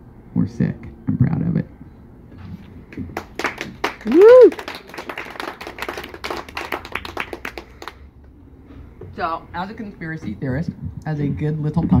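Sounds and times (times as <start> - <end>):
small audience applauding: 3.1 - 8.0.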